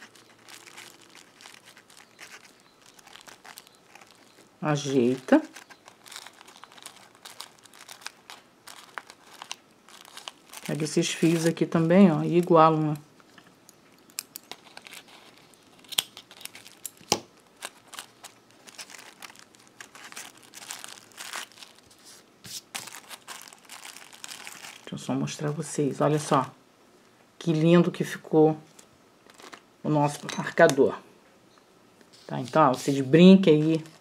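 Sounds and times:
plastic wrapping crinkling: 0.0s - 26.4s, 28.7s - 30.9s, 32.1s - 34.0s.

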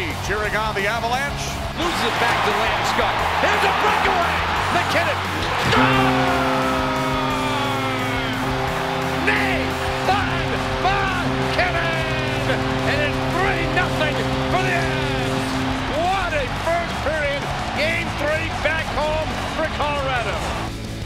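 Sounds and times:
arena crowd cheering: 0.0s - 21.0s
steady held chord: 5.5s - 19.7s.

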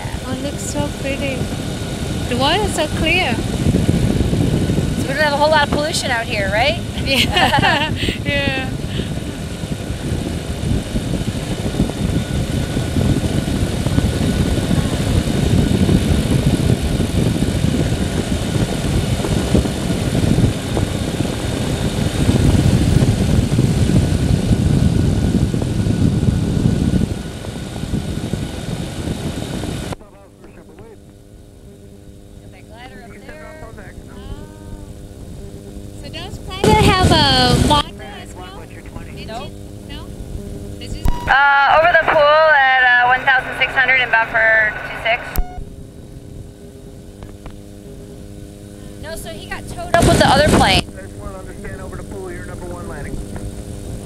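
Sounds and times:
engine and propeller drone: 0.0s - 54.0s
wind rumble: 0.0s - 54.0s
faint voices: 30.0s - 31.0s, 32.4s - 35.0s, 36.0s - 40.1s, 40.8s - 45.4s, 48.9s - 53.3s
loud burst of voice: 36.4s - 39.5s, 49.6s - 53.1s.

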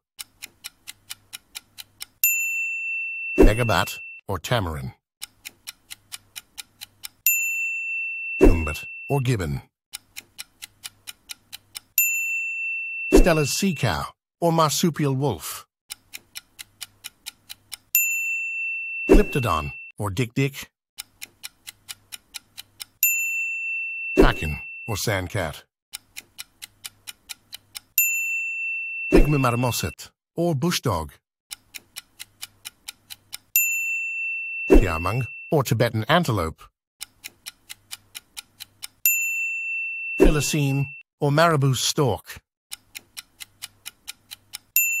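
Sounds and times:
clock-like ticking: 0.0s - 2.4s, 3.4s - 7.4s, 8.4s - 12.1s, 13.1s - 14.1s, 15.9s - 18.1s, 21.0s - 23.3s, 24.2s - 28.2s, 29.1s - 30.0s, 31.5s - 36.2s, 37.0s - 39.3s, 42.7s - 45.0s
bright chime: 2.3s - 4.2s, 7.3s - 9.3s, 12.0s - 14.0s, 18.0s - 19.9s, 28.0s - 30.0s, 33.6s - 35.6s, 39.1s - 41.0s.

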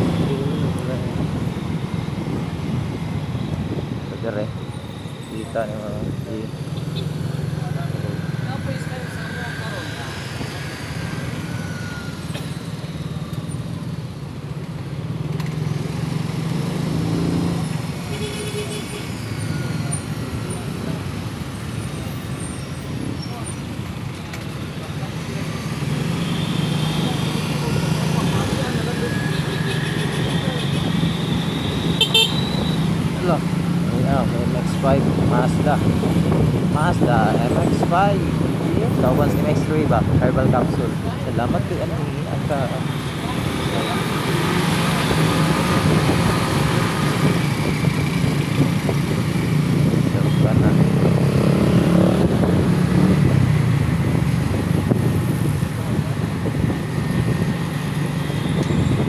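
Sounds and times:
car horn toots: 31.8s - 32.8s
car engine and road hum: 39.8s - 59.0s.

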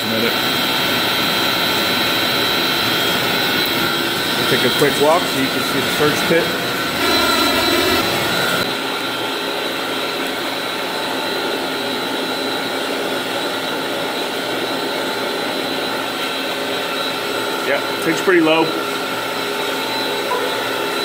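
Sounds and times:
pump motors roaring: 0.0s - 21.0s
deeper hum: 2.4s - 8.8s, 20.1s - 21.0s.

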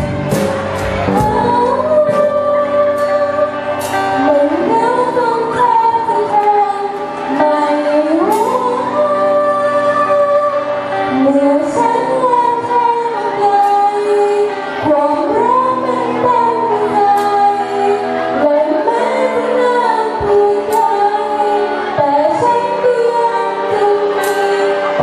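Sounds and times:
drums: 0.0s - 5.9s
electric bass: 0.0s - 25.0s
girl singing into a microphone: 1.0s - 25.0s.

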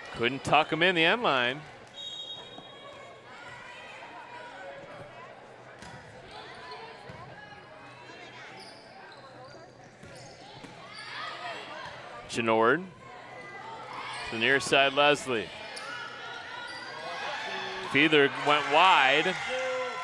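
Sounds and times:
crowd chatter: 0.0s - 20.0s
referee's whistle: 2.0s - 2.8s
players calling: 14.2s - 20.0s.

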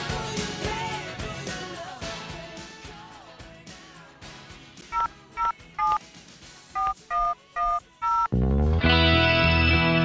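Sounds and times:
telephone keypad tones: 4.9s - 6.0s, 6.8s - 8.3s.

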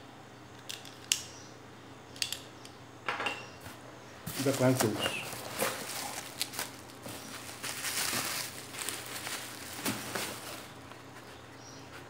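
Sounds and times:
packaging rustling and crinkling: 4.2s - 11.4s.

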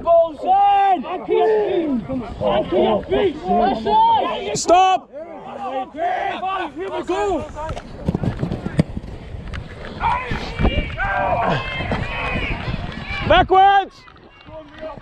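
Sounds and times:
players shouting: 0.0s - 7.8s, 10.0s - 15.0s
running footsteps: 6.9s - 15.0s.

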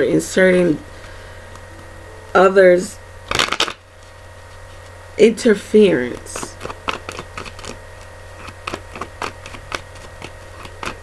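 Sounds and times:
low steady hum: 0.0s - 11.0s
cards rustling: 3.3s - 5.0s, 5.9s - 11.0s.

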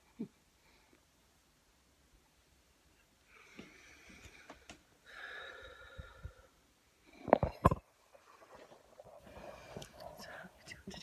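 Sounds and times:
woman whispering: 9.9s - 11.0s.

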